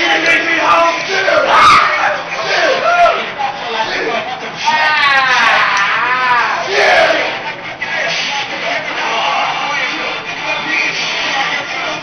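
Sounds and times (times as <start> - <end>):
young men shouting: 0.0 - 7.4.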